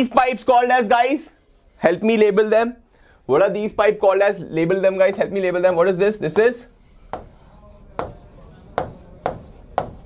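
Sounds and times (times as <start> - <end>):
marker pen tapping on board: 5.1 - 5.8, 7.1 - 10.0.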